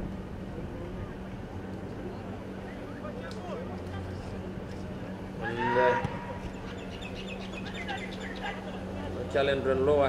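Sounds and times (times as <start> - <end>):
low steady hum: 0.0 - 10.0
small birds chirping: 6.4 - 8.8.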